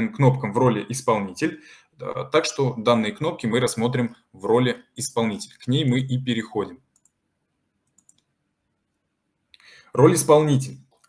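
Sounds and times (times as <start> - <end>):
computer mouse clicks: 7.0 - 7.2, 7.9 - 8.3.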